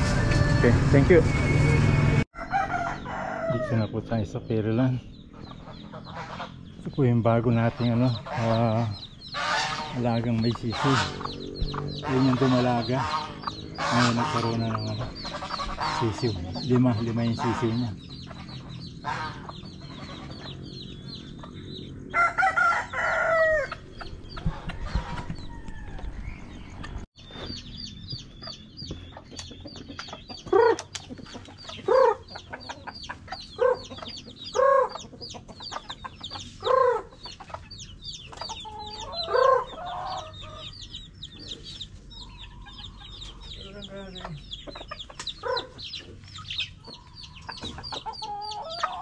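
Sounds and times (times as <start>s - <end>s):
chicks cheeping: 0.0s - 49.0s
rooster crowing: 2.4s - 3.9s, 22.1s - 23.8s, 24.5s - 26.3s
chicken clucks: 4.8s - 21.7s, 23.6s - 49.0s.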